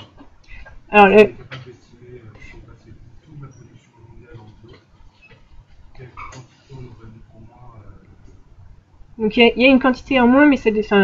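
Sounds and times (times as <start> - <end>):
faint muffled voice speaking: 1.2 - 4.9, 6.0 - 8.1.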